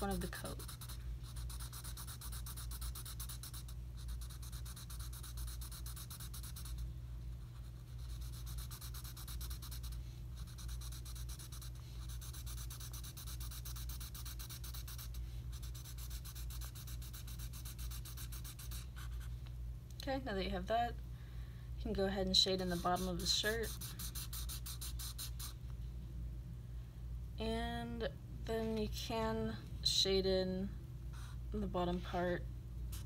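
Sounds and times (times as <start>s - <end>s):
marker scratching on paper: 0.0s - 6.8s, 7.5s - 19.3s, 22.5s - 25.6s.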